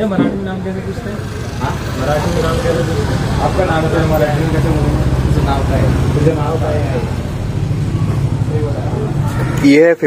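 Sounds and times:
faint voices: 0:00.0 - 0:10.0
traffic engine hum: 0:00.0 - 0:10.0.

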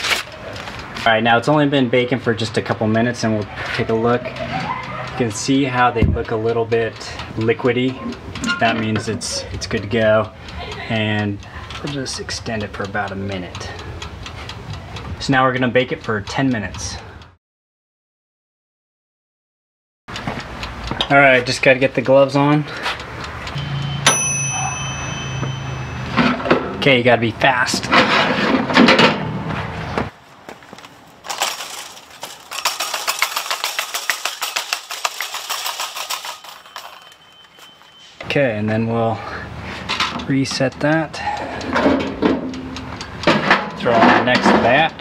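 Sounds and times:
wire baking trays clattering: 0:31.2 - 0:37.7, 0:41.7 - 0:44.9.

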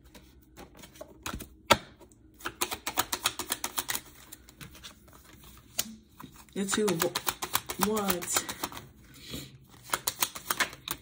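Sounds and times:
cards clicking: 0:02.4 - 0:06.0, 0:06.6 - 0:08.8, 0:09.8 - 0:11.0.

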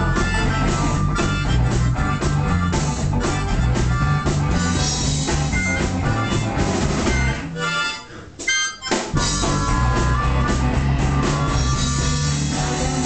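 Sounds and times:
blues harmonica: 0:00.0 - 0:13.0
live band with guitar and drums: 0:00.0 - 0:13.0.

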